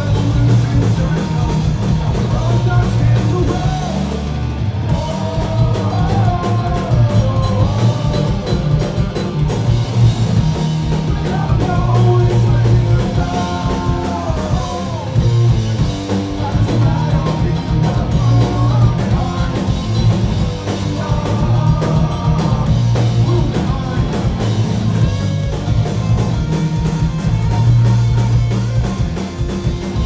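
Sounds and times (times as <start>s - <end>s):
man singing: 0.0s - 4.3s, 4.9s - 9.2s, 11.0s - 24.7s
drum kit: 0.0s - 30.0s
electric guitars: 0.0s - 30.0s.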